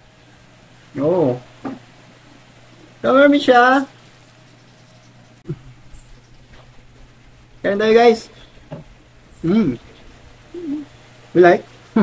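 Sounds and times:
faint background hiss: 0:00.0 - 0:12.0
person humming: 0:05.5 - 0:05.7, 0:09.4 - 0:09.9, 0:10.5 - 0:11.0.

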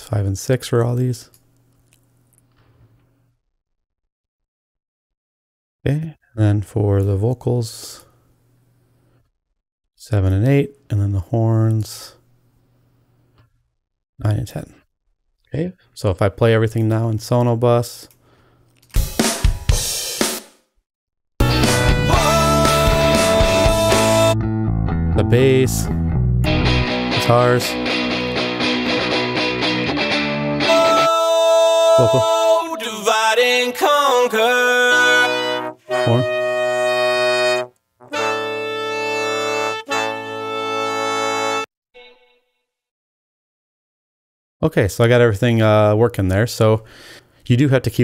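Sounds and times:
drum hits: 0:19.0 - 0:20.6
horn section playing chords: 0:21.4 - 0:24.4, 0:34.3 - 0:41.7
sliding horn note: 0:34.7 - 0:42.3.

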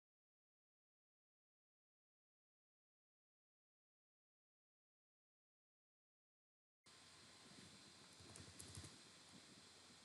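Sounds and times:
faint room hiss: 0:06.9 - 0:10.0
soft keyboard key clicks: 0:08.3 - 0:08.9.

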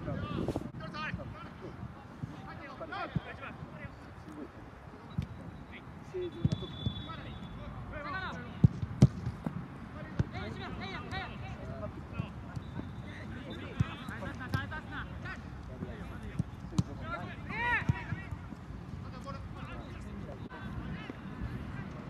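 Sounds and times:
soccer ball kicked thuds: 0:06.4 - 0:07.0, 0:08.6 - 0:10.5, 0:15.8 - 0:18.5.

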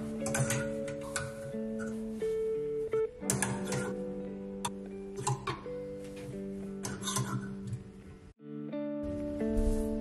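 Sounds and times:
guitar-like background music: 0:00.0 - 0:10.0.

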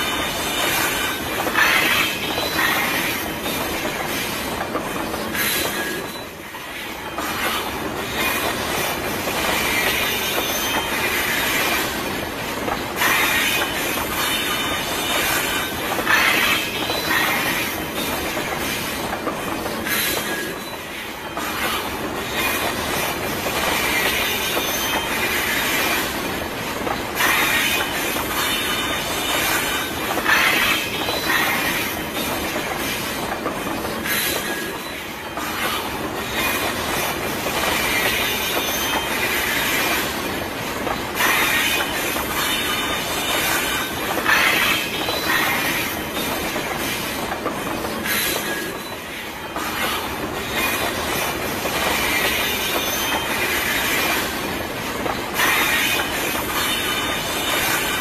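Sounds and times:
freight train cars rumbling and rattling: 0:00.0 - 0:58.0.

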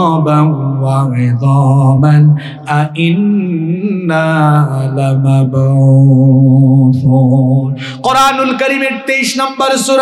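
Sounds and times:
man chanting a sermon: 0:00.0 - 0:10.0.

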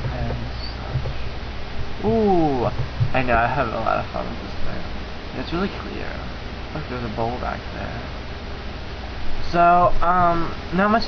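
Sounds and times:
low hum: 0:00.0 - 0:11.0
steady hiss: 0:00.0 - 0:11.0.

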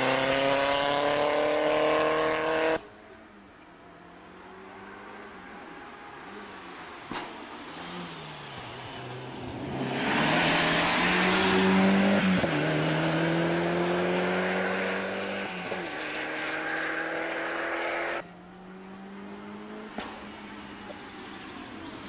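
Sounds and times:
rally car engine passing: 0:00.0 - 0:02.9, 0:04.2 - 0:22.0.

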